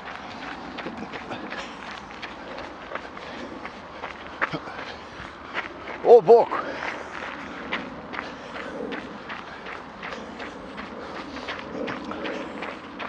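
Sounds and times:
running footsteps on gravel: 0.0s - 13.0s.

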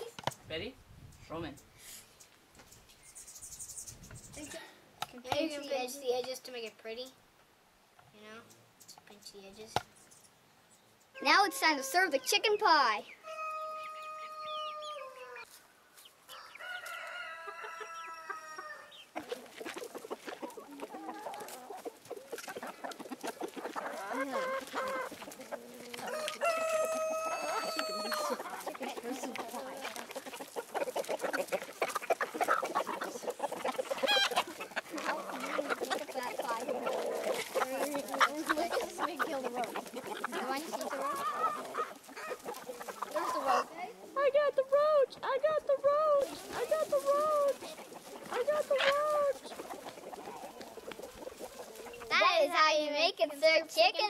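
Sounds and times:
chickens clucking: 8.3s - 54.0s
chicken drawn-out calls: 11.1s - 44.2s, 46.0s - 52.4s.

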